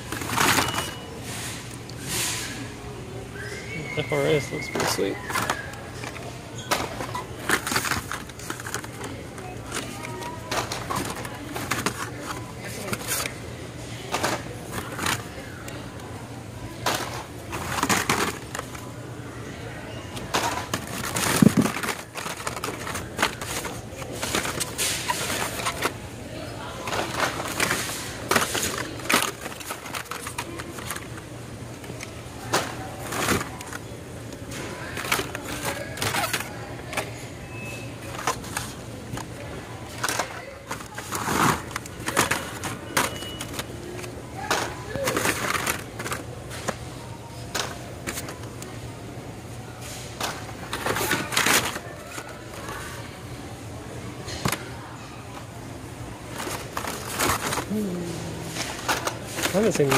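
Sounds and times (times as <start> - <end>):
plastic blister cards clacking: 4.4 - 13.4, 20.2 - 26.0, 26.9 - 31.2, 31.8 - 37.1, 38.1 - 46.8.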